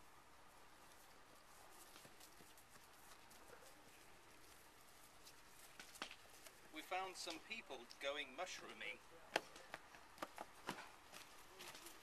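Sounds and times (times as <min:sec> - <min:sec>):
footsteps in grass: 0:00.7 - 0:08.2, 0:10.3 - 0:12.0.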